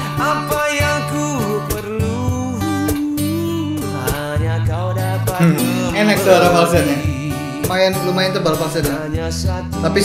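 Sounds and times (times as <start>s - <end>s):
acoustic guitar: 0.0s - 10.0s
man singing: 0.0s - 10.0s
cajon beat: 5.4s - 9.2s.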